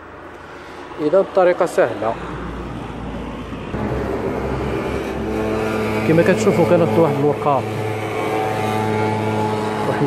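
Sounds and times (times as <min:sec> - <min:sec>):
motor humming: 0:03.8 - 0:10.0.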